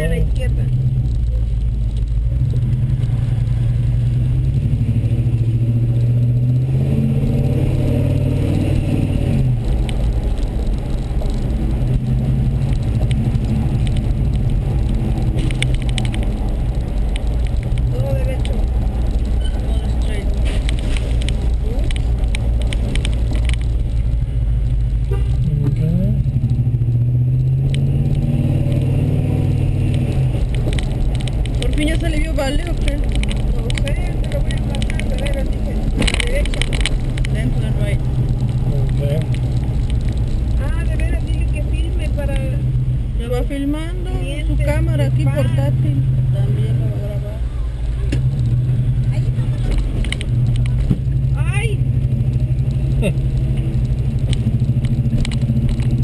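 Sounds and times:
car engine accelerating: 0.0 - 56.0
road noise: 0.0 - 56.0.

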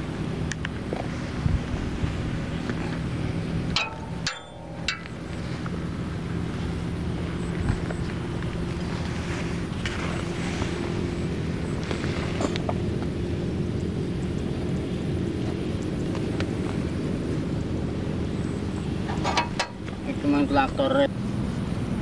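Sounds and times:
diesel tractor engine idling: 0.0 - 15.3.

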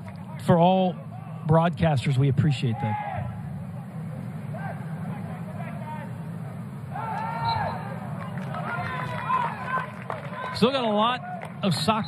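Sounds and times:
players and spectators shouting: 2.6 - 3.6, 4.4 - 12.0.

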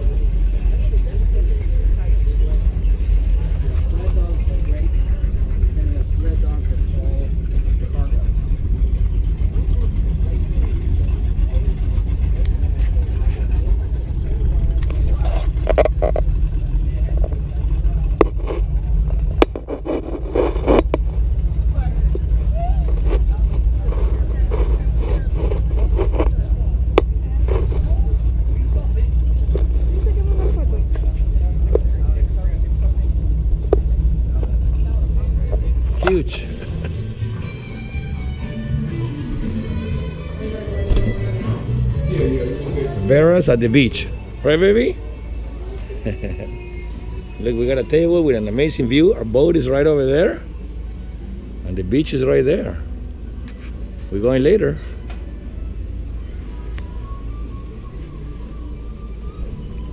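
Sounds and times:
faint voices: 0.0 - 59.9.

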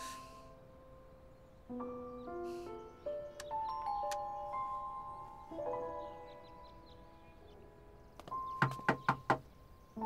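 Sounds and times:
soft background music: 0.0 - 10.0
knuckles knocking on a door: 8.5 - 9.5.

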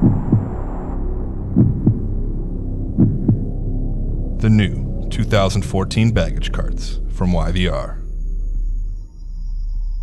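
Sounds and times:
heartbeat thumps: 0.0 - 0.8, 1.4 - 3.8.

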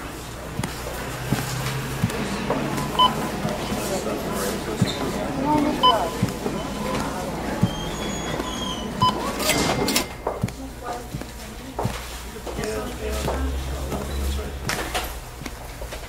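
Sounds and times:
room clatter: 0.0 - 16.0.

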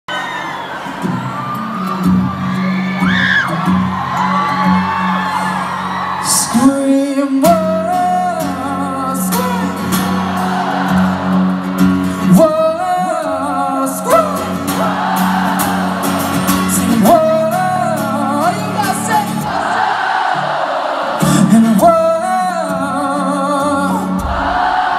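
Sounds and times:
crowd whooping: 0.1 - 8.2, 9.3 - 24.9
man singing long held notes: 12.1 - 15.8, 21.2 - 24.6.

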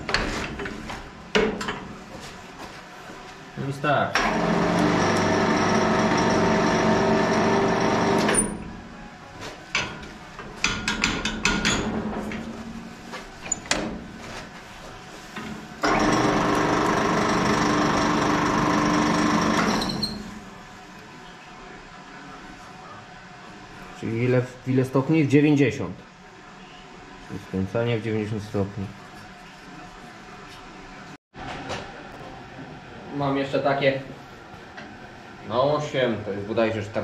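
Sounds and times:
motor drive running: 4.2 - 8.4.

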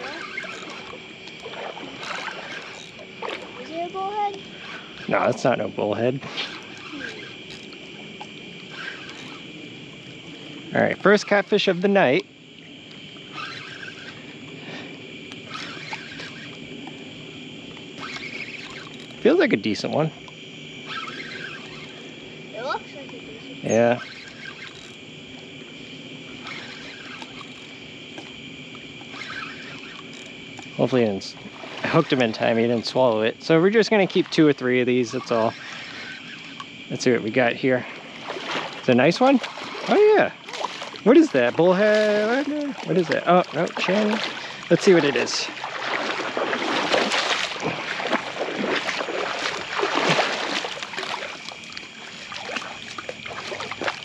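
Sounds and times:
fishing reel clicks: 0.0 - 3.6, 4.2 - 5.1, 6.3 - 10.0, 12.9 - 14.4, 15.3 - 17.0, 17.7 - 19.3, 20.2 - 22.1, 23.0 - 25.5, 26.4 - 31.1, 31.9 - 37.0
insects chirring: 0.0 - 54.0
water splashing: 0.0 - 54.0.

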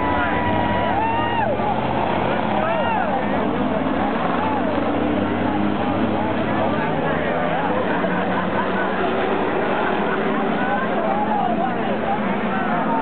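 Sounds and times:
crowd voices: 0.0 - 13.0
race car engines: 0.0 - 13.0.

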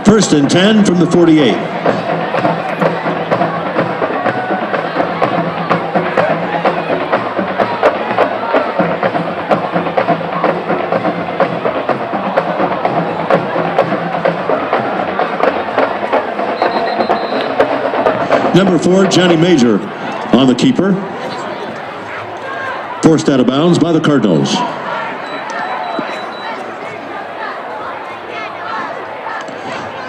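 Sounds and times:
band music with busy drum beat: 0.0 - 20.8, 25.3 - 26.6
stadium crowd noise: 0.0 - 30.0.

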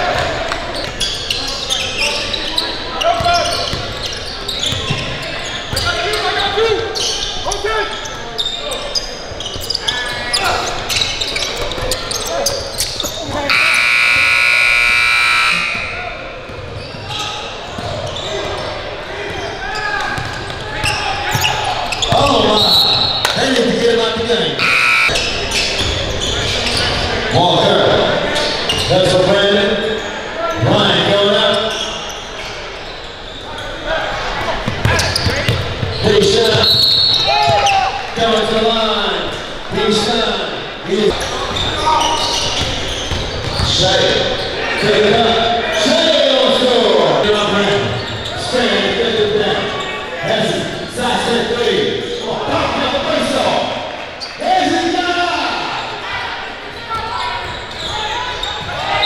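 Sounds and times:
loud buzzer: 13.5 - 16.0, 24.6 - 25.2
basketball bouncing on hardwood floor: 42.6 - 43.7.

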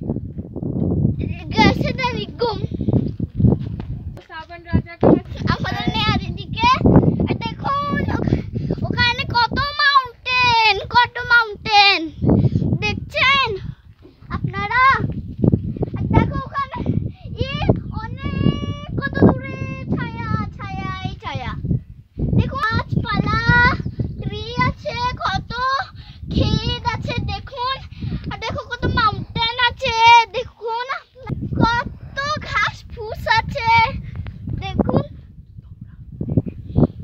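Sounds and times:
wind on microphone: 0.0 - 37.0
child singing: 17.6 - 21.2, 22.4 - 33.7.

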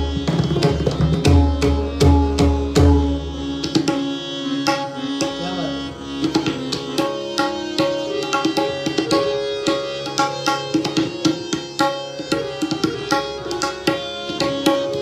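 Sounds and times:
harmonium melody: 0.0 - 15.0.

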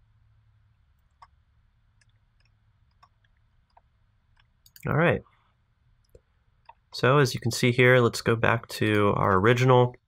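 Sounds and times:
computer mouse clicks: 1.0 - 5.0.

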